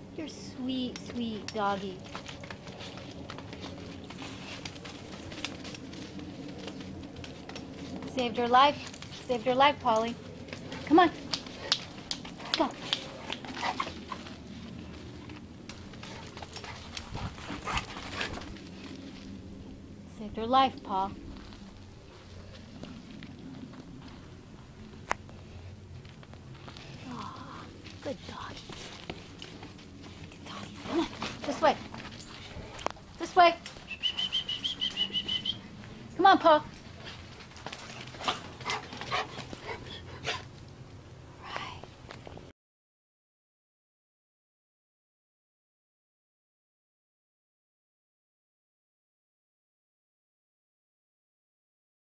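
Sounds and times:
dog noises: 0:09.9 - 0:19.2, 0:28.7 - 0:36.0, 0:36.7 - 0:40.6.

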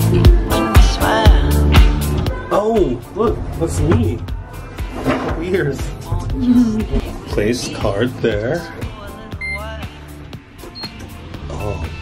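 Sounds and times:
background music with singing: 0:00.0 - 0:12.0
key-card reader beep: 0:10.7 - 0:11.0.

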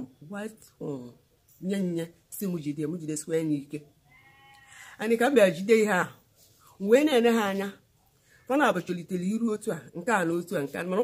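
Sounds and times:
woman speaking: 0:00.0 - 0:03.9, 0:04.8 - 0:07.8, 0:08.5 - 0:11.0.

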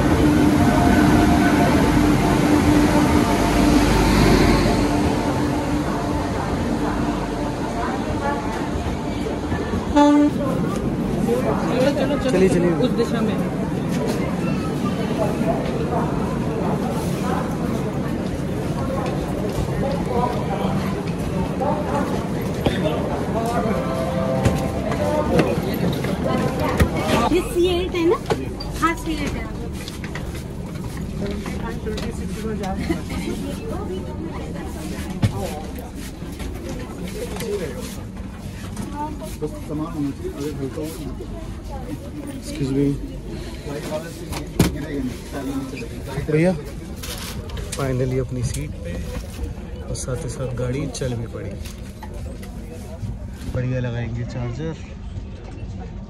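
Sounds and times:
crowd noise: 0:00.0 - 0:56.0
murmur of passengers chattering: 0:00.0 - 0:56.0
train rolling slowly: 0:00.0 - 0:56.0
train horn toot: 0:09.8 - 0:10.6, 0:23.6 - 0:25.4.

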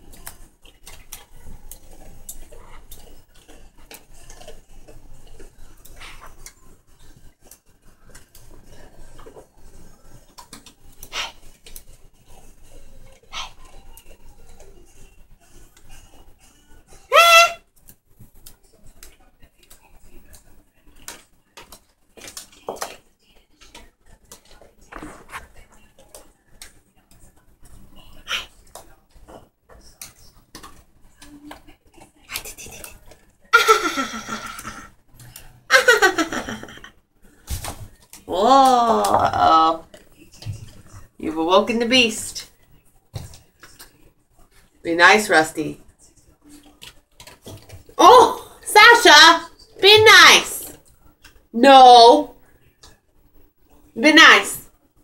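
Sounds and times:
cockatoo squawk: 0:17.1 - 0:17.6
claws tapping on tile floor: 0:17.8 - 0:23.0.

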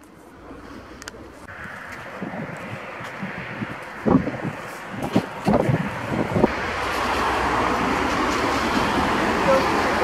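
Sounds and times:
car approaching on road: 0:00.1 - 0:10.0
wind buffeting microphone: 0:01.2 - 0:10.0.

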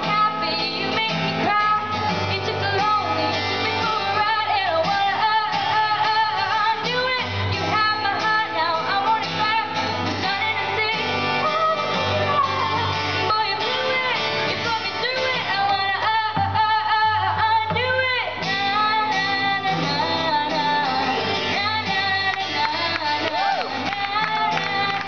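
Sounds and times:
acoustic guitar strumming: 0:00.0 - 0:25.0
girl singing into a microphone: 0:00.0 - 0:25.0.

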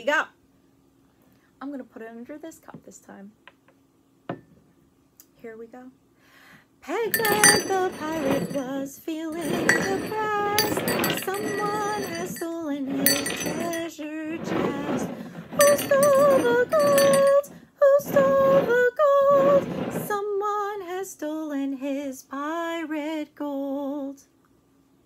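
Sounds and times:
ceramic mugs clinking and scraping: 0:07.1 - 0:08.7, 0:09.3 - 0:17.5
object jingling under mug: 0:07.1 - 0:08.7, 0:09.4 - 0:17.5.

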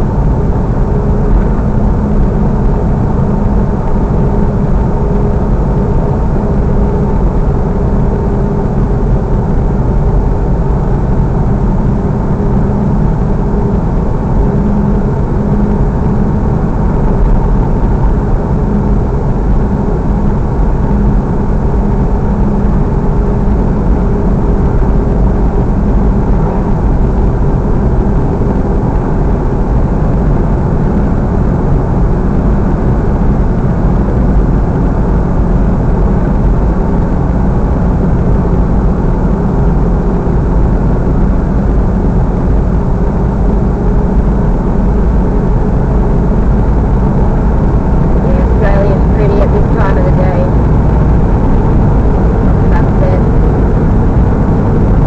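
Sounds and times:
engine drone inside vehicle: 0:00.0 - 0:55.0
road noise: 0:00.0 - 0:55.0.

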